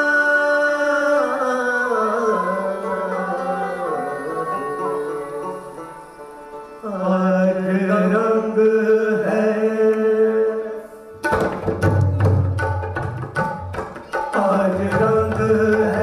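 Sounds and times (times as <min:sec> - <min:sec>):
voices singing sustained notes: 0:00.0 - 0:11.0
bowed string instrument: 0:00.0 - 0:16.0.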